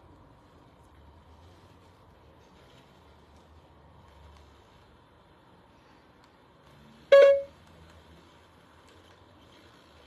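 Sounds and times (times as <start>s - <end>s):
low steady background noise: 0.0s - 10.0s
short loud horn toot: 7.1s - 7.5s.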